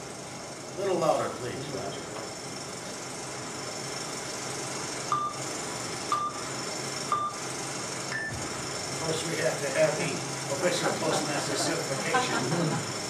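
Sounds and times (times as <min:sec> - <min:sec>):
steady hiss: 0:00.0 - 0:13.0
countdown beeps: 0:05.1 - 0:05.4, 0:06.1 - 0:06.4, 0:07.1 - 0:07.4.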